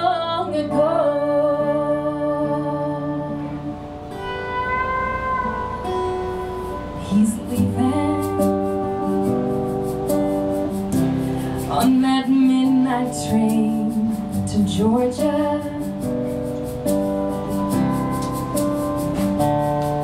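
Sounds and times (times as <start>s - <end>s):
acoustic guitar: 0.0s - 20.0s.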